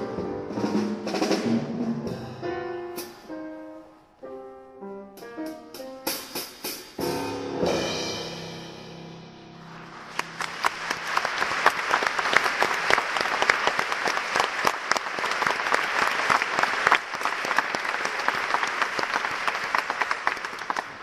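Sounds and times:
audience applauding: 10.0 - 21.0.

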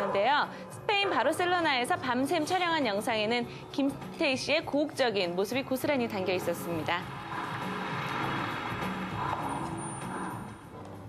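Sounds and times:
commercial soundtrack music: 0.0 - 11.0
car driving by: 6.1 - 11.0.

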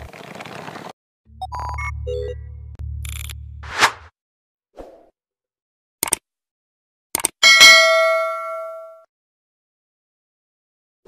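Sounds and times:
bright bell ding: 7.4 - 9.1.

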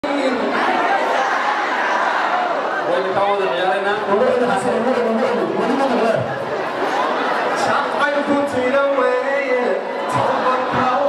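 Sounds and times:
crowd talking in echoing hall: 0.0 - 11.0.

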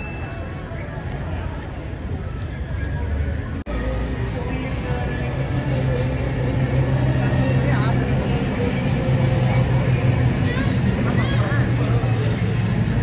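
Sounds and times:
voices in background: 0.0 - 13.0
bus engine droning: 1.6 - 13.0.

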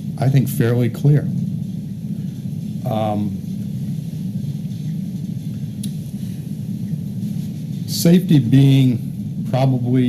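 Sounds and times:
low room noise rumble: 0.0 - 10.0.

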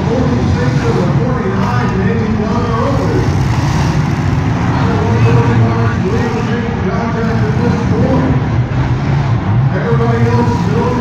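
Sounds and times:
car engines revving: 0.0 - 11.0.

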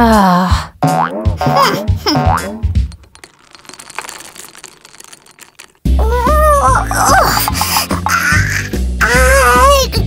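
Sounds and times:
playful cartoon music: 0.8 - 2.7, 6.0 - 10.0.

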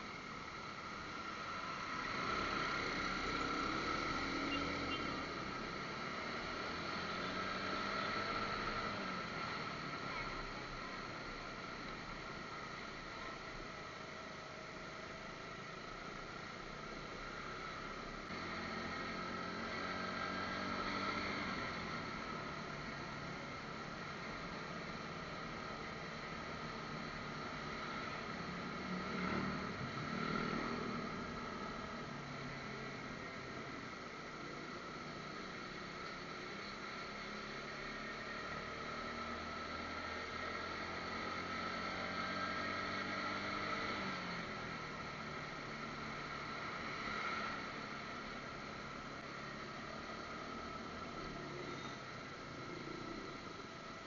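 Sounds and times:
road noise: 0.0 - 54.0.

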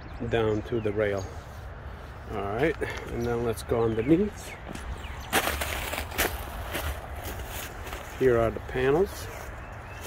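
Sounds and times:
footsteps crunching on gravel: 4.2 - 10.0.

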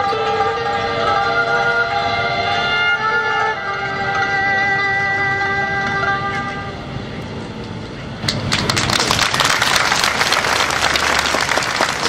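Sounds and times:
erhu and pipa sustained chord: 0.0 - 8.1.

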